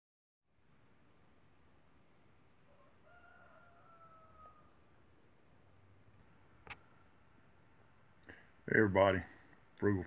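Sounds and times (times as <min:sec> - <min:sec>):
faint rooster crow: 0:02.6 - 0:05.0.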